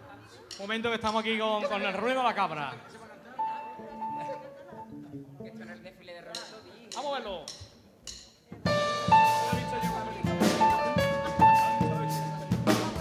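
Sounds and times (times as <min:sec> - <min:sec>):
band playing with guitars and drums: 0:08.6 - 0:13.0.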